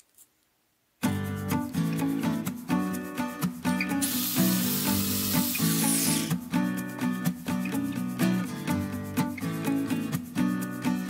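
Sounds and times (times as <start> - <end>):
background music: 1.0 - 11.0.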